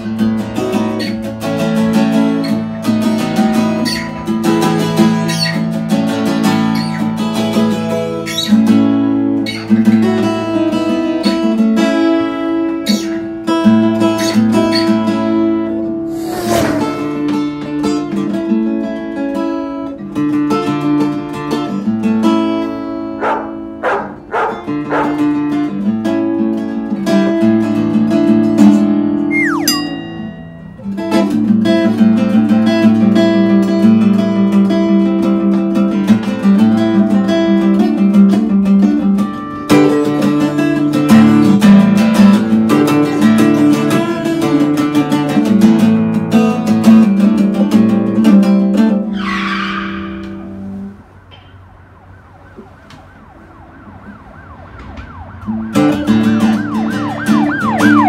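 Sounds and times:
acoustic guitar strumming: 0.0s - 51.8s, 55.4s - 58.0s
brief hissing rush: 16.0s - 17.6s
faint emergency siren wailing: 29.3s - 30.4s, 51.0s - 58.0s.

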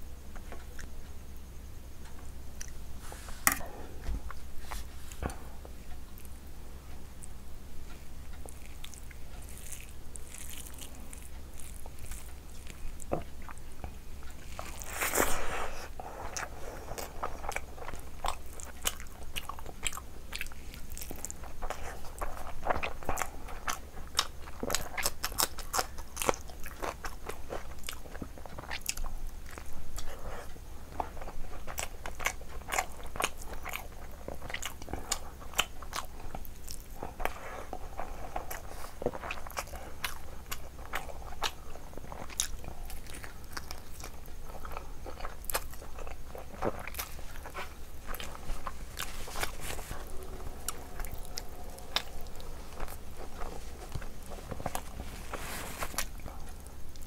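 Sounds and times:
person chewing food: 2.0s - 57.0s.

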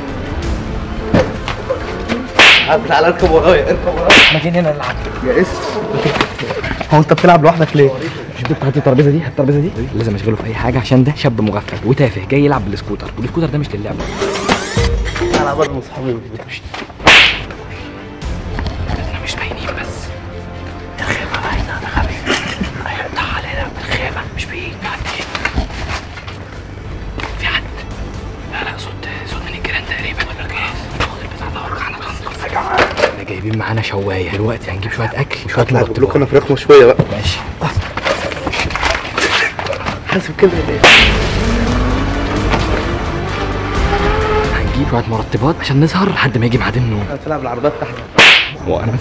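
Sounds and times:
background music: 0.0s - 49.0s
sharp swish: 2.4s - 2.9s, 4.1s - 4.6s, 17.0s - 17.5s, 40.8s - 41.5s, 48.2s - 48.6s.

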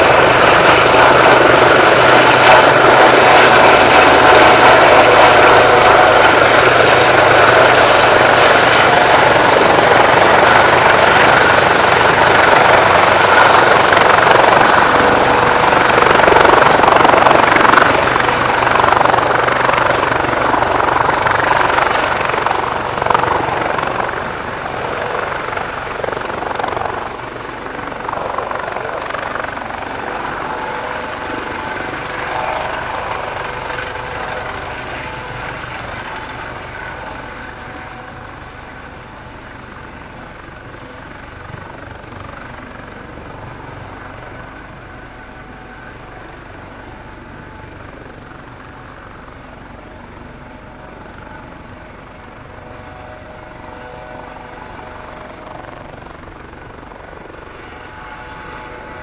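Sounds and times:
helicopter hovering: 0.0s - 59.0s.

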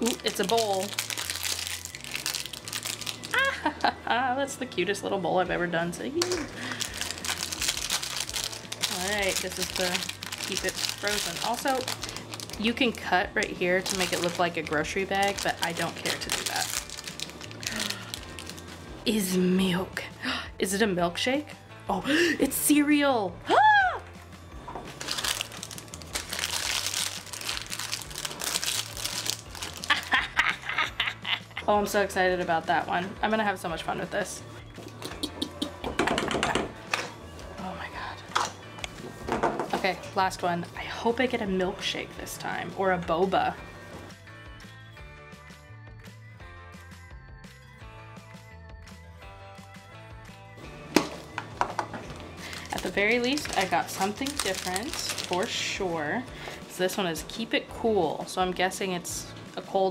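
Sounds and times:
packaging crinkling: 0.0s - 3.8s, 6.4s - 18.7s, 24.9s - 30.5s, 52.1s - 55.5s
light background music: 0.0s - 59.9s.

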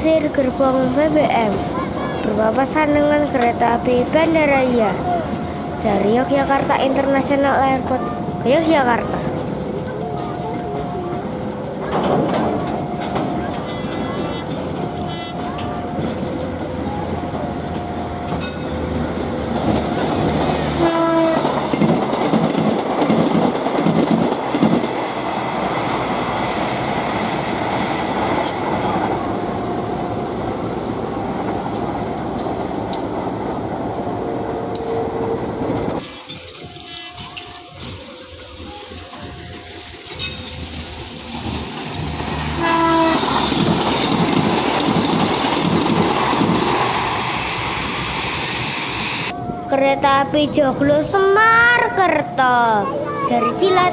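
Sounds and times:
train wheels rumbling on rails: 0.0s - 53.9s
train horn blasts: 20.8s - 21.6s, 42.6s - 43.4s.

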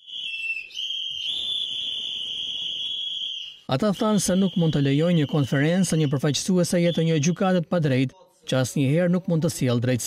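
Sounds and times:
shrill whistles blowing: 0.0s - 7.6s.

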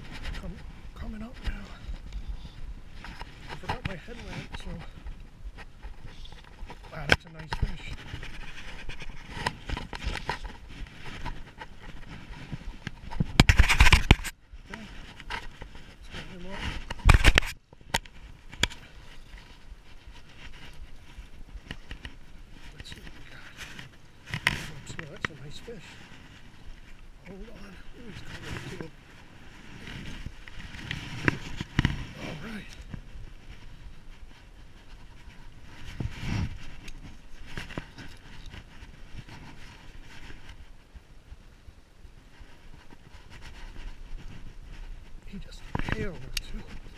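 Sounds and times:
microphone handling rustle: 0.0s - 46.9s.

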